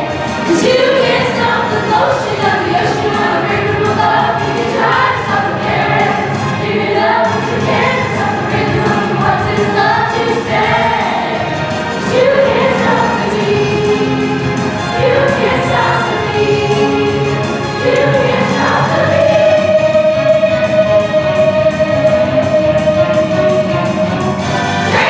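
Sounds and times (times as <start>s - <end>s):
cast singing together: 0.0s - 24.0s
musical accompaniment: 0.0s - 25.0s.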